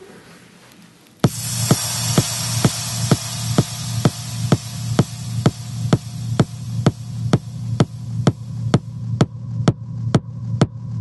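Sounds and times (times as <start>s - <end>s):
low synth hum: 1.2s - 11.0s
techno kick drum: 1.2s - 11.0s.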